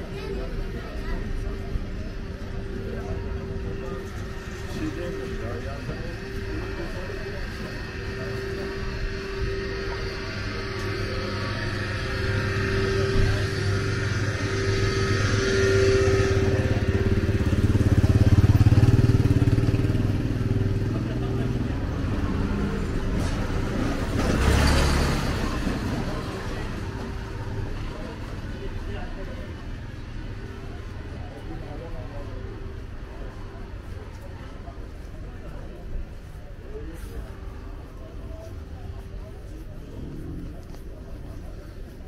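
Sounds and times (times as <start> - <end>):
street noise: 0.0 - 42.0
motorcycle engine: 0.7 - 32.0.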